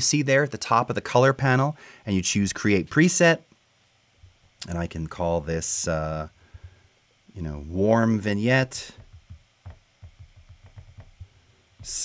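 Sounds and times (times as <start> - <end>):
fingertips tapping on glass: 9.0 - 12.0.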